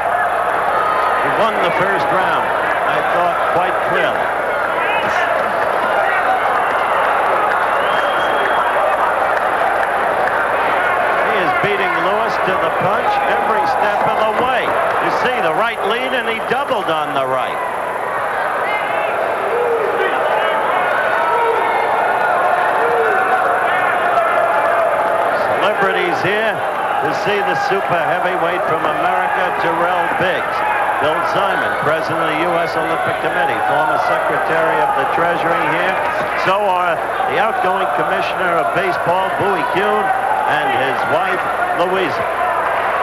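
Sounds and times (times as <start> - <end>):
crowd din: 0.0 - 43.0
people shouting: 18.2 - 28.0.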